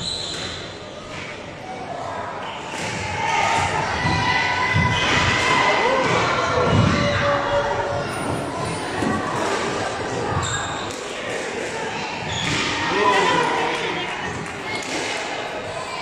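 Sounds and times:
voices shouting: 12.2 - 14.2.

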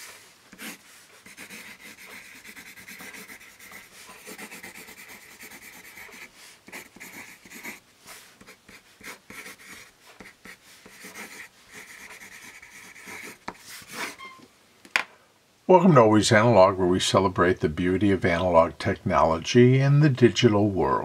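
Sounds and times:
pencil scratching on paper: 0.0 - 14.4.

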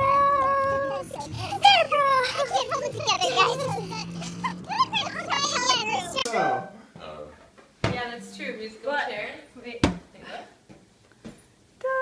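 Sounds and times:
women chattering and laughing: 0.5 - 6.2.

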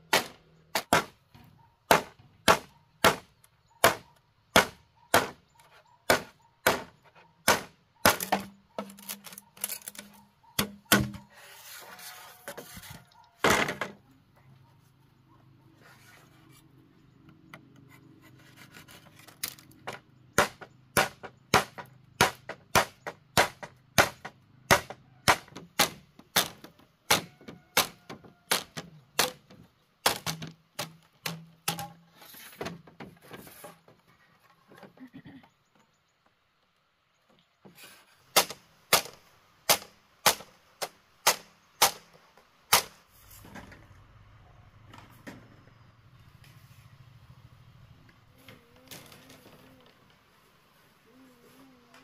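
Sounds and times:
machete chopping bamboo: 0.1 - 1.2, 1.9 - 5.4, 6.1 - 11.2, 19.3 - 32.0, 38.3 - 43.0.

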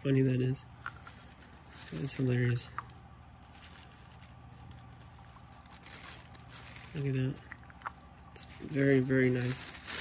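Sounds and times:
steady low hum: 0.0 - 10.0
handling cardboard box and tissue paper: 1.0 - 2.6, 3.3 - 7.4, 8.1 - 10.0.

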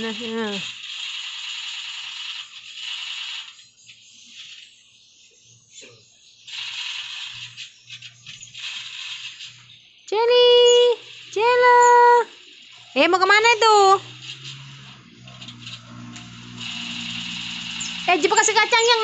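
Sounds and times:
otter squealing: 10.4 - 19.0.

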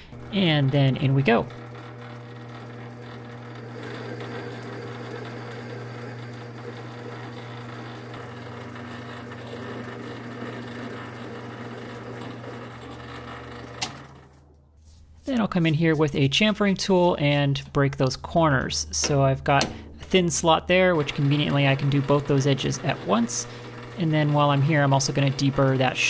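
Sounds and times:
metal lathe motor hum: 0.0 - 14.5, 18.1 - 26.0.

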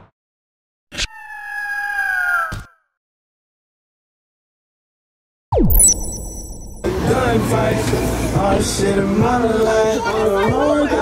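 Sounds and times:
bird of prey screech: 1.0 - 2.9
sharp hit sound effect: 5.5 - 7.1.

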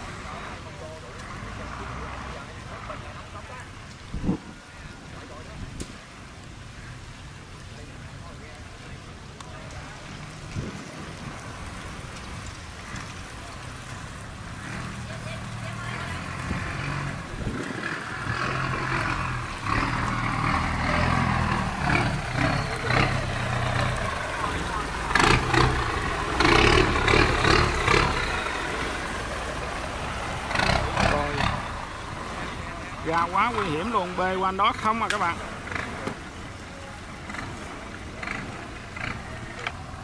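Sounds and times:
people's voices: 0.0 - 40.0
boat engine running: 9.8 - 40.0.

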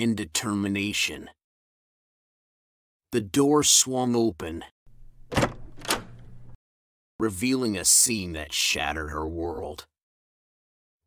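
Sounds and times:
door clicks: 4.9 - 6.6.

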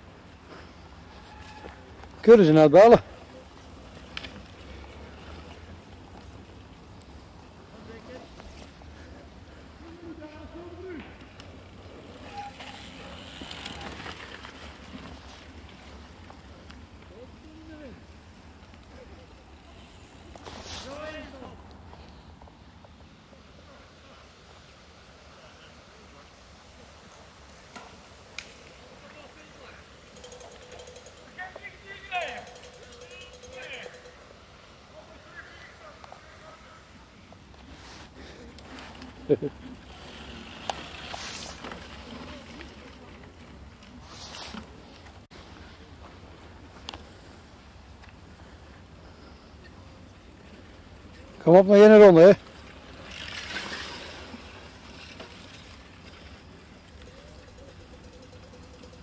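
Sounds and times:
bike tyres hissing through sand: 0.1 - 57.4
brief hiss: 20.4 - 21.1.

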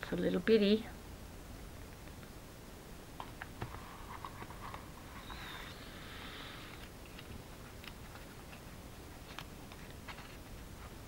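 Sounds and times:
paper rustling and crinkling: 7.1 - 11.0.

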